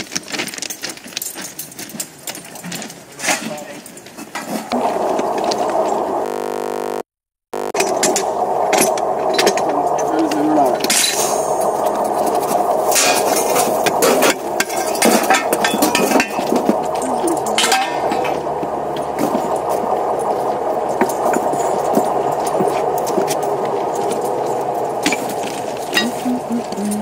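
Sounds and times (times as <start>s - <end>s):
steady mechanical hum: 4.7s - 7.0s, 7.6s - 27.0s
workers' voices: 7.6s - 27.0s.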